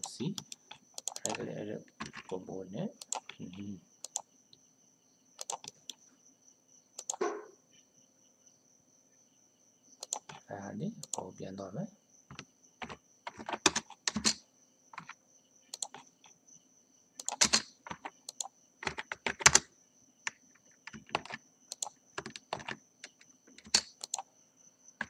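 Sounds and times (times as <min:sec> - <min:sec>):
keyboard and mouse clicking: 0:00.0 - 0:02.4, 0:03.0 - 0:04.2, 0:05.4 - 0:06.0, 0:07.0 - 0:07.3, 0:10.0 - 0:11.3, 0:12.3 - 0:14.4, 0:15.0 - 0:16.3, 0:17.2 - 0:19.7, 0:20.3 - 0:24.3.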